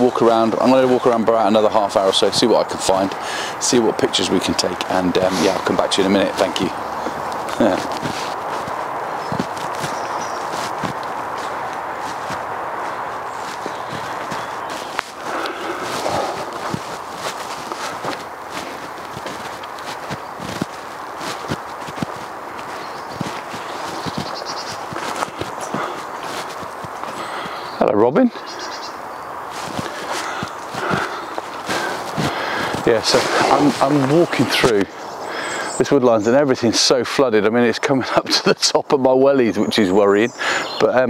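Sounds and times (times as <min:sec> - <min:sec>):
footsteps in boots on wet path: 0:00.0 - 0:35.9
steady rushing background noise: 0:00.0 - 0:38.9.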